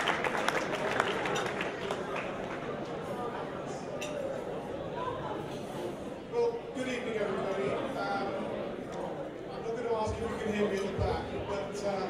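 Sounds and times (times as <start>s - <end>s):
chatter of voices in a hall: 0.0s - 12.0s.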